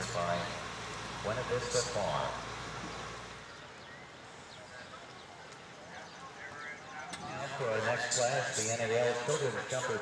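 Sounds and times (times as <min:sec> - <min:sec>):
distant voices: 0:00.0 - 0:10.0.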